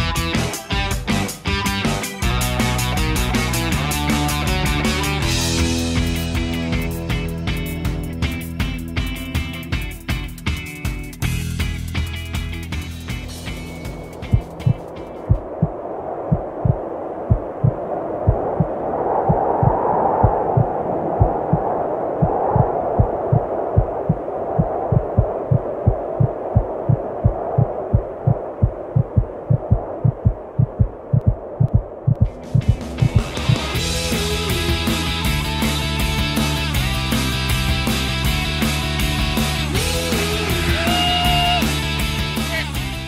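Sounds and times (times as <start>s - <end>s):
rock background music: 0.0s - 15.3s, 32.3s - 43.0s
fast heartbeat thumps: 8.6s - 35.5s
muffled hum: 12.3s - 33.8s.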